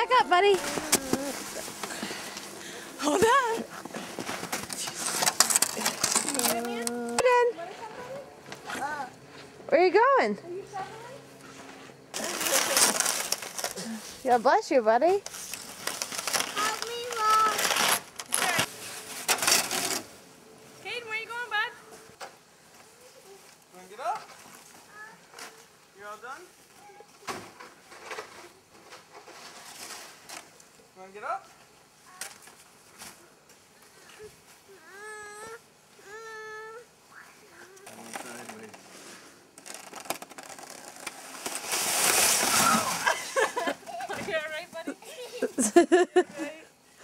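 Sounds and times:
snow scraping against plastic sled: 12.2s - 14.4s, 15.3s - 20.1s, 37.9s - 44.5s.

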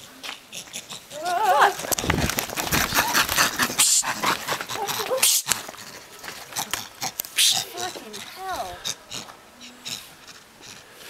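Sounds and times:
monkey shrieking: 7.4s - 10.1s.

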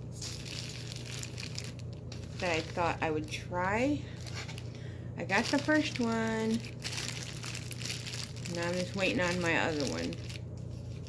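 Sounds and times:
plastic bag crinkling: 0.1s - 11.0s.

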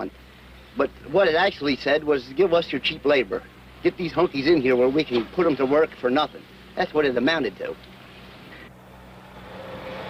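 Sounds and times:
car engine approaching: 0.0s - 10.0s
faint outdoor hiss: 0.0s - 10.0s.

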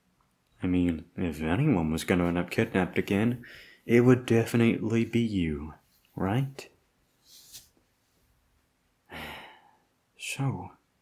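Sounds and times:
man sighing: 9.1s - 9.8s.

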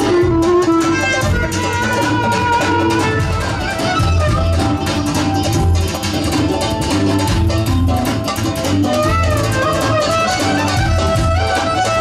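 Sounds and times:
violin melody: 0.0s - 5.4s
plucked strings: 0.0s - 12.0s.

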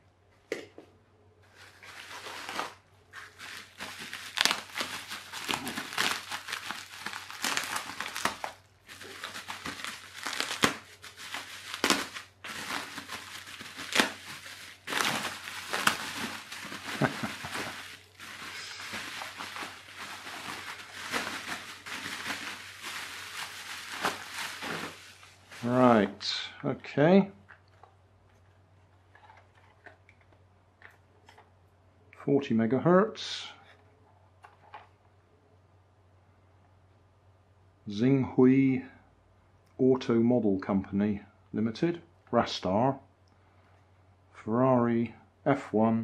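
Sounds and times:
bubble wrap crinkling and crackling: 1.5s - 26.6s, 27.4s - 31.6s.

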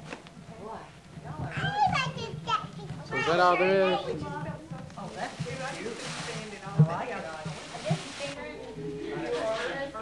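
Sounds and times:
child's high-pitched voice: 1.5s - 4.2s.

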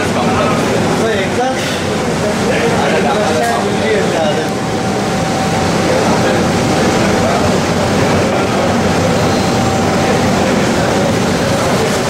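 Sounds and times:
kitchen machinery rumble: 0.0s - 12.0s
many people talking: 0.0s - 12.0s
thin steady tone: 2.3s - 12.0s.

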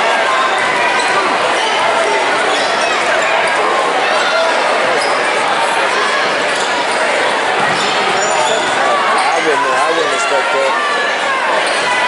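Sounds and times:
chatter and calls: 0.0s - 12.0s.

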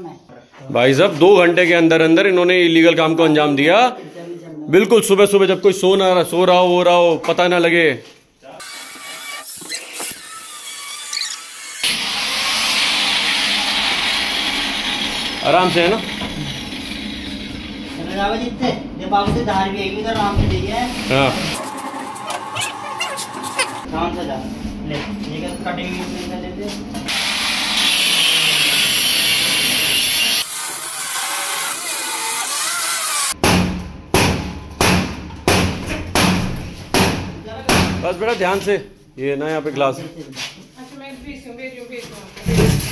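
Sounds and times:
angle grinder cutting sheet metal: 8.6s - 18.0s, 20.9s - 23.9s, 27.1s - 33.4s
heavy bangs on door: 33.4s - 38.0s.

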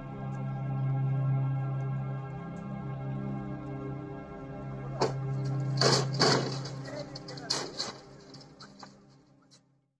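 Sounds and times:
ambient drone music: 0.0s - 9.8s.

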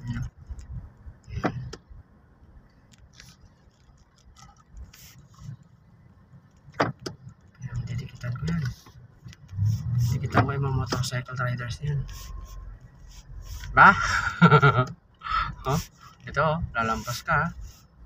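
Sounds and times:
car interior rumble: 0.0s - 18.0s
man speaking: 9.6s - 12.2s, 15.5s - 17.6s.

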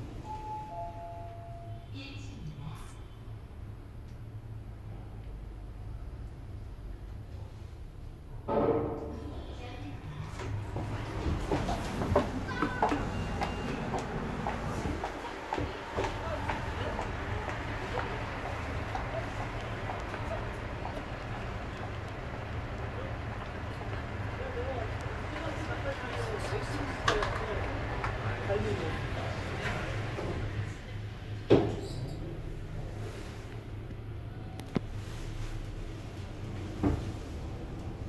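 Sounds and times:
elevator announcement sound: 0.0s - 2.4s, 10.6s - 22.9s
traffic hum: 1.8s - 38.0s
passers-by: 9.0s - 31.5s.

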